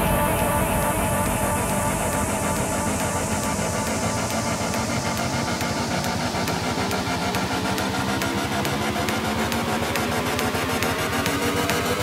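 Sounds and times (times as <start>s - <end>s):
high tick beat: 0.0s - 12.0s
pulsing bass line: 0.0s - 12.0s.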